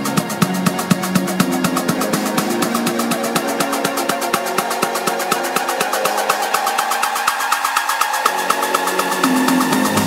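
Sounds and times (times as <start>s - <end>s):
fast hi-hat ticks: 0.0s - 10.0s
sustained synth pad: 0.0s - 10.0s.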